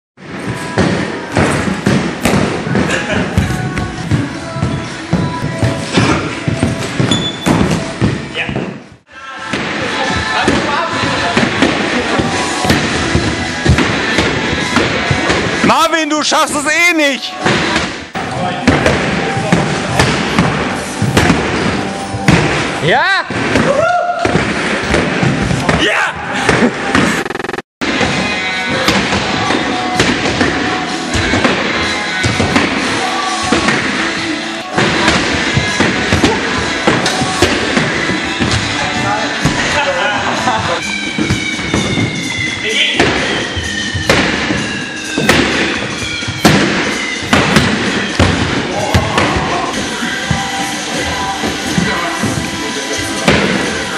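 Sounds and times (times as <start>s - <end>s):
stilts banging on hall floor: 0.2s - 15.8s, 40.5s - 53.9s
noisy background: 0.2s - 53.9s
high music tones: 26.6s - 53.9s.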